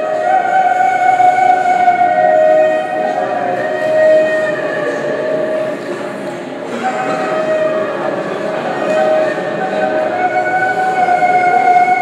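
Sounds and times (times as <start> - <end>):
sustained musical notes: 0.0 - 12.0.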